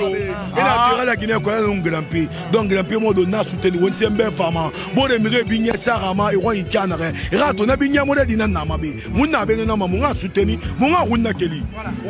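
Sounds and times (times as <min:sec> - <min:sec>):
man rapping into microphone: 0:00.0 - 0:11.7.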